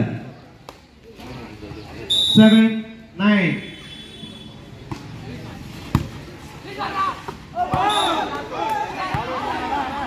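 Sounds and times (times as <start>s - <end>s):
players shouting: 6.6s - 10.0s.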